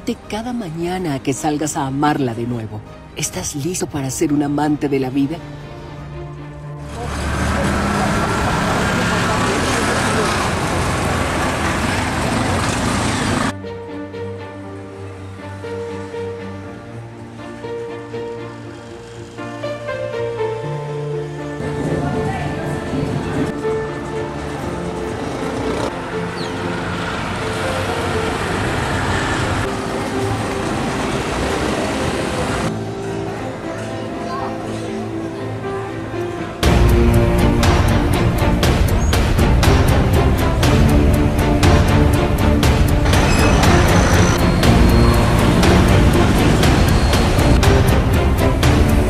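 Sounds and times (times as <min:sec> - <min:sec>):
background music: 0:00.0 - 0:49.0
traffic in congested street: 0:06.5 - 0:13.6, 0:21.6 - 0:49.0
crowd chatter: 0:32.7 - 0:36.0.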